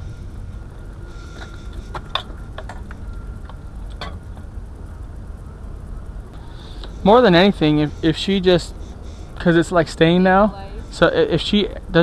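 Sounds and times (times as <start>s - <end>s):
steady low rumble: 0.0s - 12.0s
sharp clicks and knocks: 1.4s - 4.5s.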